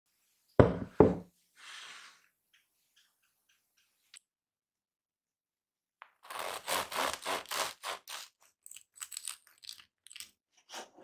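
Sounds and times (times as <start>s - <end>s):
ceramic dish knocking on wooden table: 0.6s - 1.3s.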